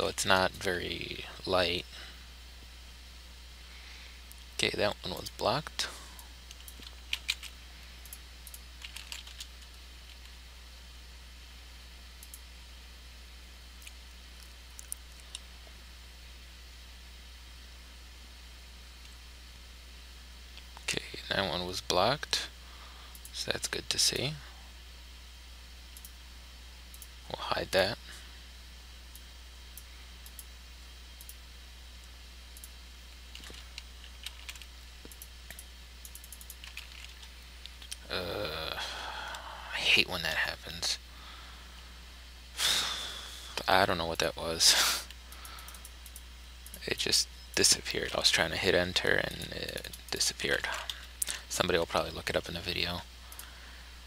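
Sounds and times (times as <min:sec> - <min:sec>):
low hum: 0:00.0 - 0:54.0
keyboard keystrokes: 0:06.5 - 0:07.5, 0:08.8 - 0:10.3.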